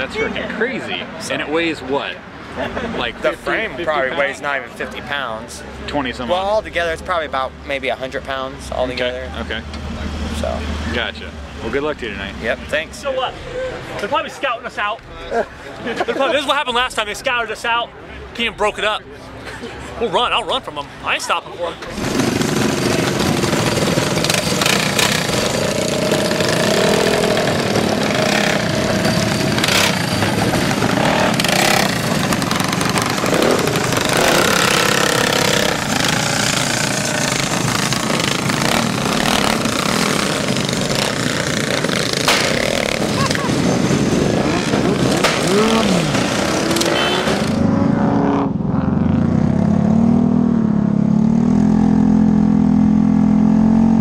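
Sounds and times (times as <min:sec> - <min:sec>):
scooters and mini bikes revving: 0:20.2 - 0:54.0.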